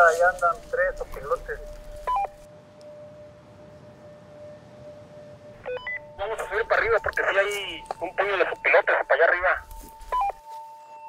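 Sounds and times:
two-way radio chirp: 0:05.7 - 0:10.4.

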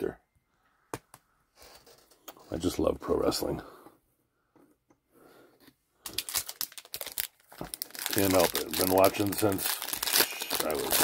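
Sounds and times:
wrapper crinkling and tearing: 0:06.0 - 0:11.0.

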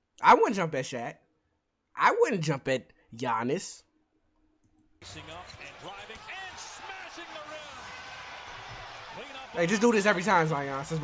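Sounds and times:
arena crowd noise: 0:05.0 - 0:11.0.

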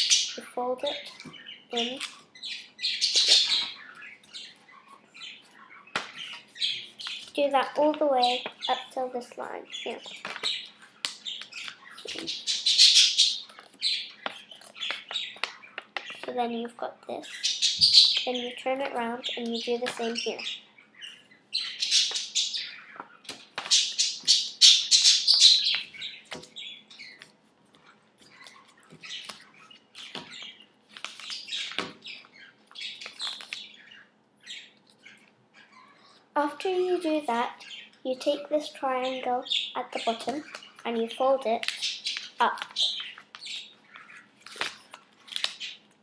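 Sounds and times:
budgerigars chirping: 0:00.0 - 0:16.4, 0:17.1 - 0:45.8.

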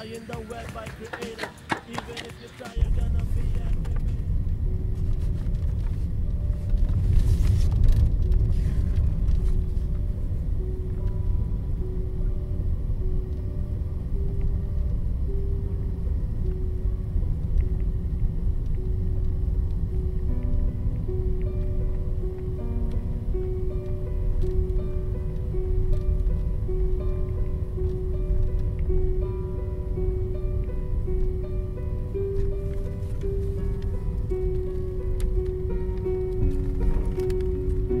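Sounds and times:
car interior rumble: 0:00.0 - 0:38.0
slow melody of held notes: 0:02.8 - 0:38.0.

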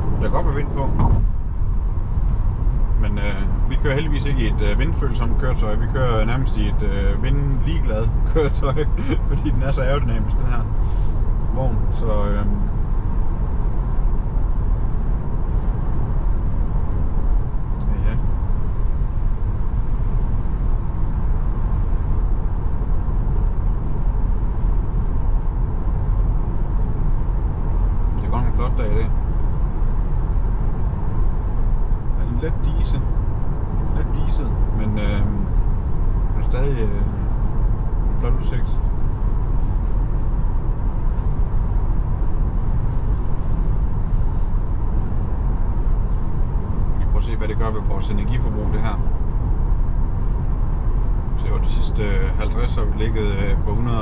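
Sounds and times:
tyre and wind noise in car: 0:00.0 - 0:54.0.

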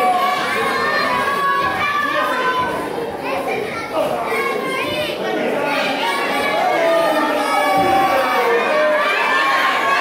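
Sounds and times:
children's voices: 0:00.0 - 0:10.0
crowd shouting and chattering: 0:00.0 - 0:10.0.

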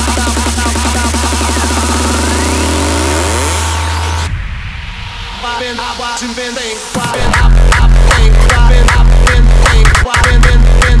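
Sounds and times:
deep bass note: 0:00.5 - 0:06.1, 0:07.0 - 0:09.8
synth riser climbing in pitch: 0:01.1 - 0:08.1
sweeping synth effects: 0:01.2 - 0:07.7.

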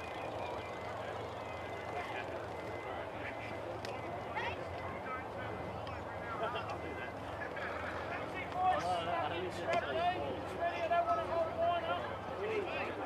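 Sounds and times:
distant shouts and calls: 0:00.0 - 0:13.0.

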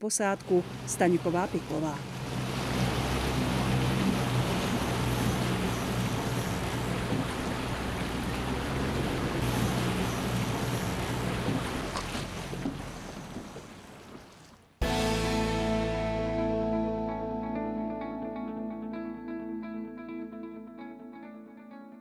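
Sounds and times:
water rushing: 0:00.1 - 0:15.0.

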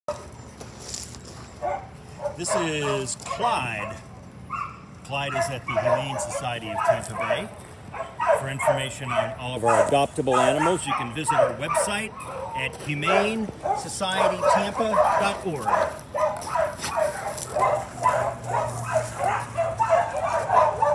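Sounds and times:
low outdoor background: 0:00.1 - 0:20.9
dog yipping: 0:01.6 - 0:20.9.

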